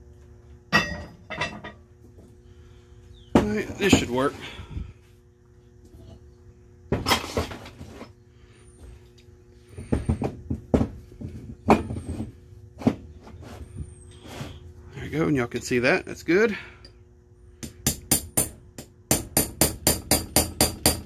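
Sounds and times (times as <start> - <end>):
hammer tapping steel punch: 17.6 - 21.0.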